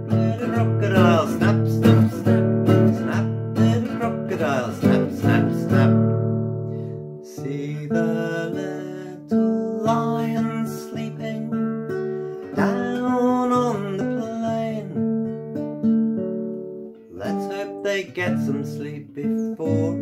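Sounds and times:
classical guitar chords: 0:00.0 - 0:20.0.

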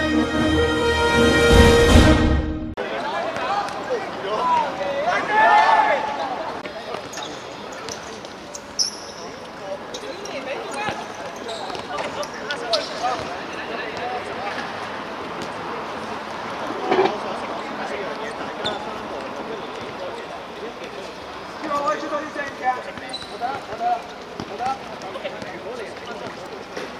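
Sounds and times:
murmur of voices: 0:02.8 - 0:26.9
balls bouncing on concrete: 0:10.7 - 0:14.7, 0:22.4 - 0:26.9.

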